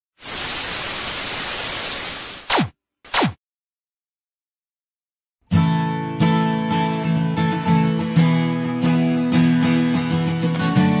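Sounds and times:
tv static hiss: 0.2s - 2.5s.

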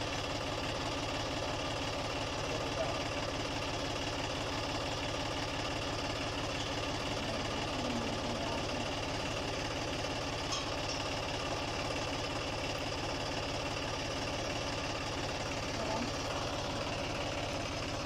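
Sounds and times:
diesel tractor engine idling: 0.0s - 18.0s.

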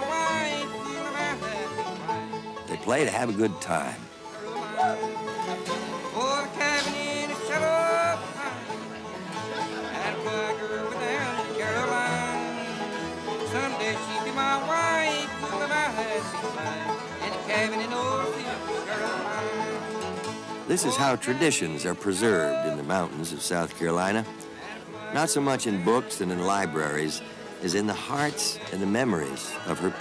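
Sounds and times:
man singing: 0.0s - 1.8s, 2.7s - 5.1s, 6.1s - 8.8s, 9.8s - 12.8s, 13.5s - 20.0s, 20.6s - 30.0s
acoustic guitars strummed: 0.0s - 30.0s
upright bass: 0.0s - 30.0s.

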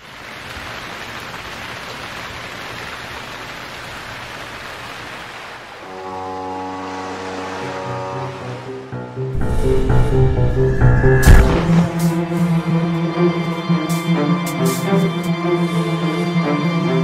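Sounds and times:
heavy rainfall hiss: 0.0s - 8.7s
low sustained musical tones: 5.9s - 17.0s.

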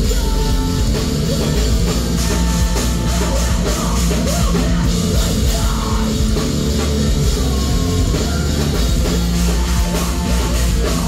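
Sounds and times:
rock band playing loud: 0.0s - 11.0s.

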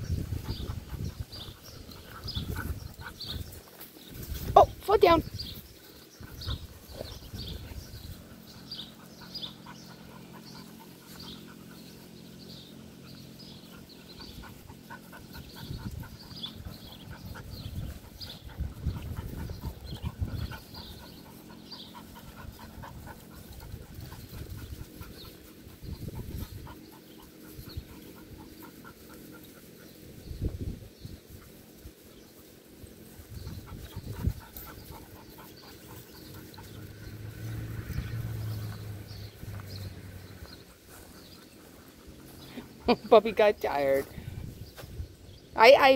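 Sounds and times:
dog panting: 0.0s - 30.3s, 33.1s - 44.3s.

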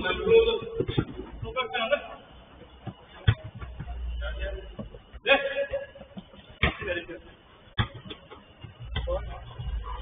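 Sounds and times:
players' voices: 0.0s - 10.0s.

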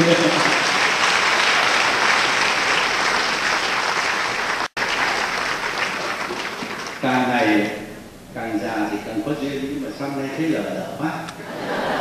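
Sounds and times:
audience applauding: 0.0s - 7.4s.

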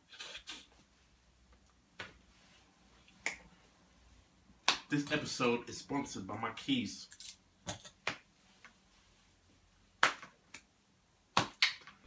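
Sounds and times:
man speaking: 4.9s - 7.1s.

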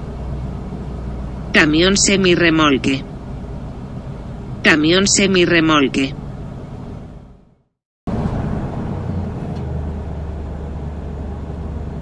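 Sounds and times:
heavy truck engine running: 0.0s - 7.5s, 8.1s - 12.0s
road noise: 0.0s - 12.0s.

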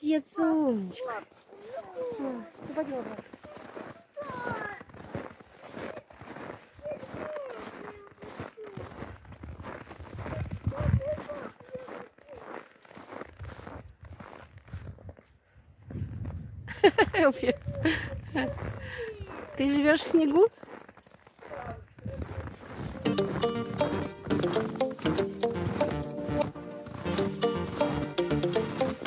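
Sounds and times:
footsteps crunching through snow: 0.8s - 16.4s, 18.2s - 23.1s.

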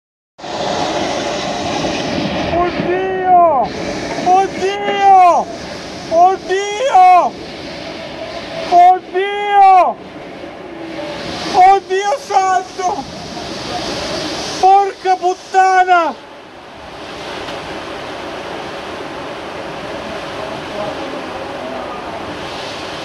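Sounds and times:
heavy rain pouring: 0.4s - 23.0s
person shouting: 2.6s - 3.7s, 4.3s - 5.5s, 6.1s - 7.3s, 8.7s - 10.0s, 11.6s - 13.0s, 14.6s - 16.2s.

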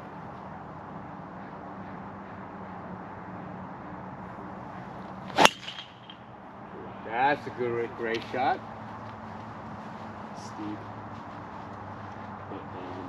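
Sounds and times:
outdoor background hum: 0.0s - 13.0s
golf club striking ball: 5.3s - 6.3s.

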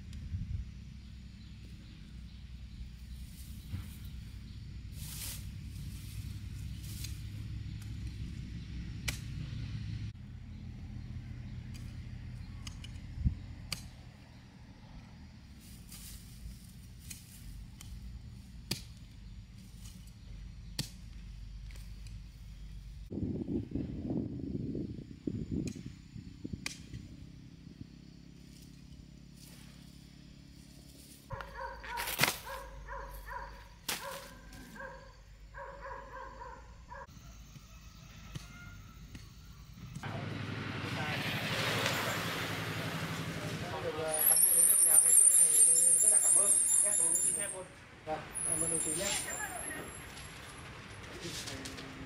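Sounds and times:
soil and leaves rustling: 1.1s - 52.0s
stalks snapping: 9.0s - 9.3s, 12.6s - 14.0s, 19.8s - 22.2s, 26.6s - 27.0s, 31.3s - 32.7s, 33.8s - 34.7s.

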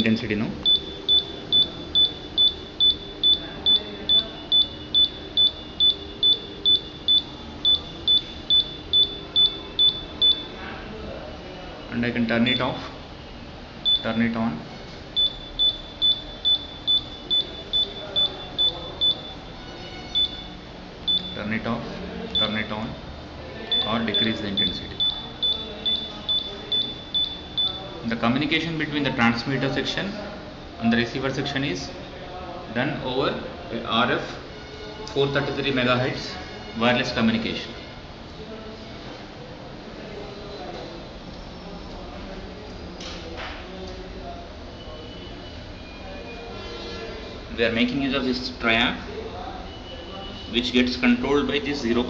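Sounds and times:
electronic buzzer beeps: 0.6s - 10.5s, 13.8s - 14.2s, 15.2s - 21.4s, 23.7s - 27.8s.

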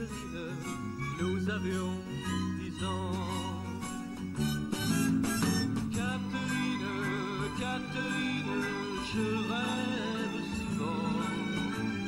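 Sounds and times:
band playing strummed chords: 0.0s - 12.0s.

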